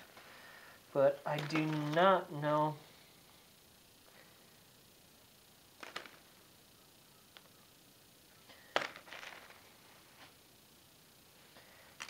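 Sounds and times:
coal lumps clicking and rustling: 1.2s - 2.1s, 8.5s - 9.6s.

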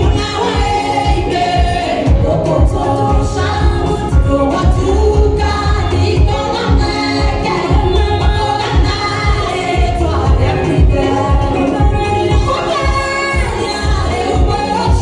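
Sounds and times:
amplified music with bass beat: 0.0s - 15.0s
women singing into microphones: 0.0s - 15.0s.

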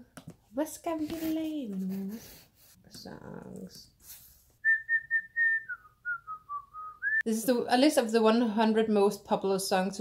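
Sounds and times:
woman whistling a tune: 4.6s - 7.2s.

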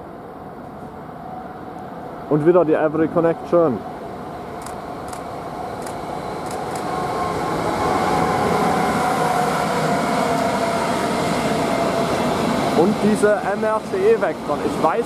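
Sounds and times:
thin whine: 0.8s - 15.0s
train wheels rumbling on rails: 4.5s - 15.0s.

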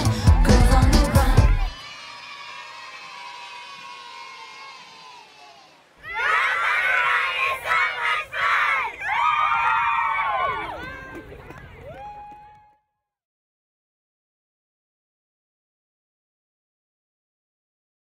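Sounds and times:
song: 0.0s - 2.2s
girls shouting a cheer: 1.3s - 11.2s
children's voices: 1.5s - 9.2s.

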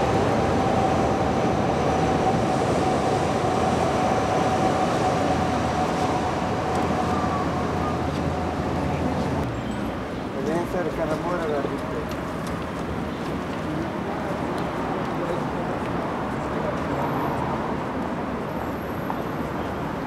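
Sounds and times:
city street traffic: 0.0s - 20.0s.

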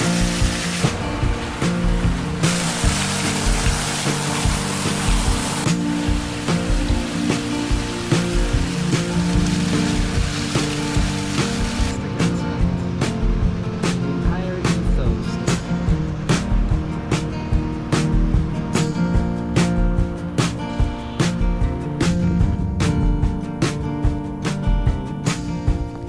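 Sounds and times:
steady hiss: 0.0s - 12.0s
music with steady beat: 0.0s - 26.0s.

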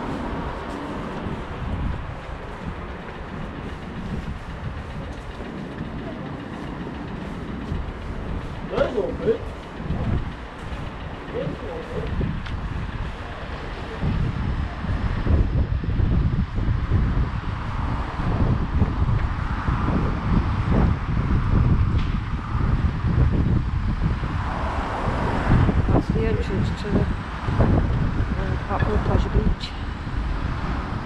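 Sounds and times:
faint road traffic: 0.0s - 31.0s
wind buffeting microphone: 0.0s - 31.0s.

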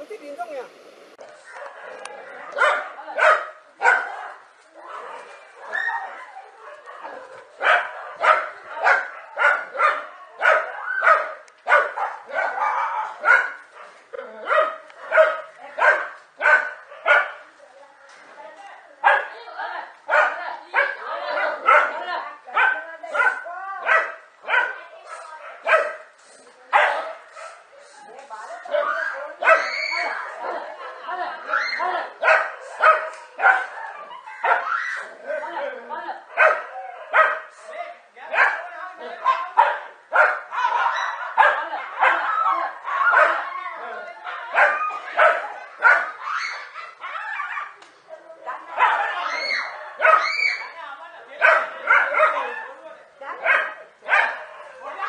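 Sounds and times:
dogs barking and yelping: 1.2s - 17.5s, 20.1s - 26.1s, 28.5s - 37.5s, 38.4s - 50.8s, 51.4s - 55.0s.

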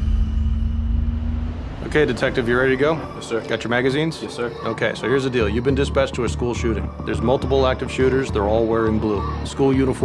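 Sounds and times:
low rumble: 0.0s - 4.3s
man speaking: 1.8s - 10.0s.

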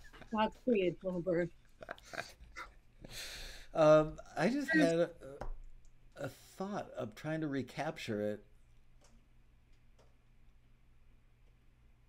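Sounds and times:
people laughing: 1.8s - 2.5s.

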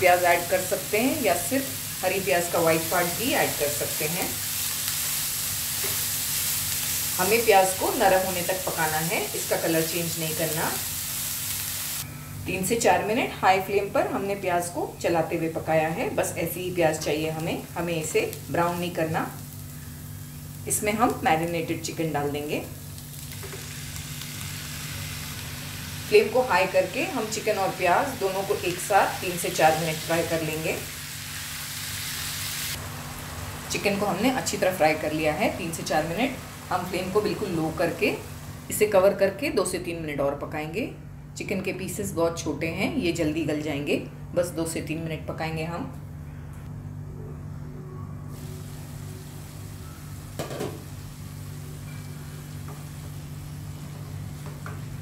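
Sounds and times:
food sizzling in hot oil: 0.0s - 12.1s, 16.5s - 38.9s, 48.3s - 55.0s.

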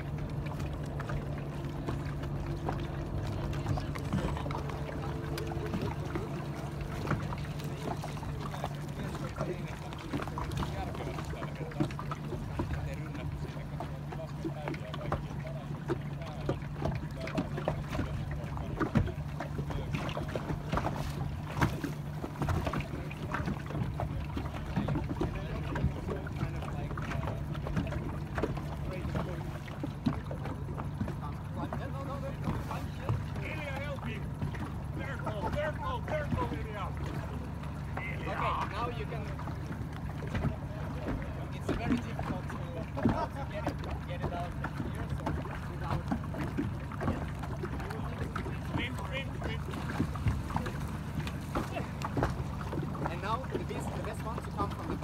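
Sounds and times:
motorboat engine running: 0.0s - 55.0s
water slapping against hull: 0.0s - 55.0s.

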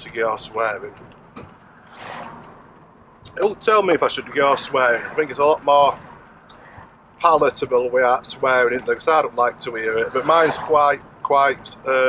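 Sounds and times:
van engine and road hum: 0.0s - 12.0s.

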